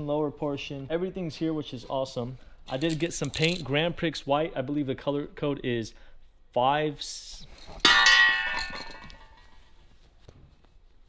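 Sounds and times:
ringing metallic clang: 7.9s - 9.5s.

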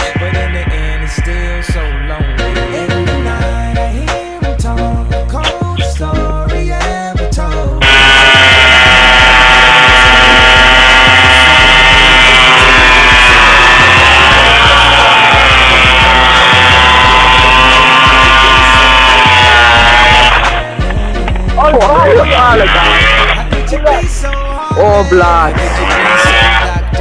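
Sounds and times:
music with steady bass beat: 0.0s - 27.0s
tyre spinning in burnout: 7.8s - 20.7s
scooter engine revving high: 7.8s - 20.8s, 21.6s - 23.6s, 25.5s - 27.0s.

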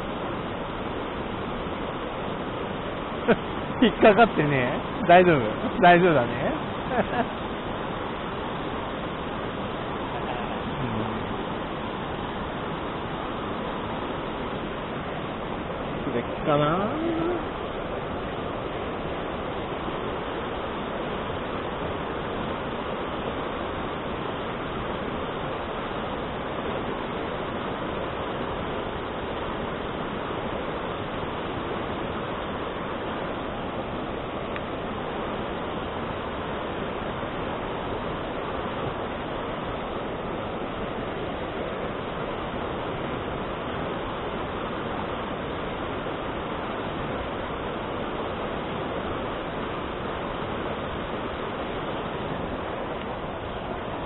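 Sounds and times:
stream rushing over boulders: 0.0s - 54.0s.

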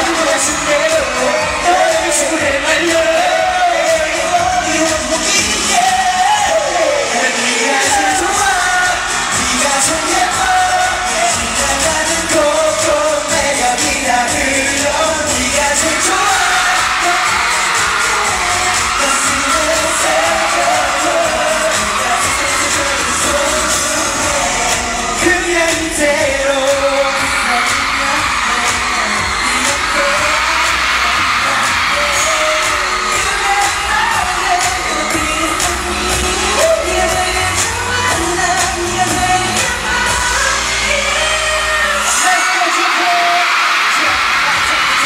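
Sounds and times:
men singing into microphones: 0.0s - 45.0s
pop backing track: 0.0s - 45.0s.

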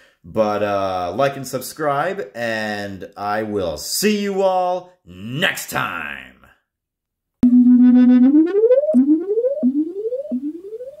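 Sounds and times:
synthesizer tone sweeping up: 7.4s - 11.0s.

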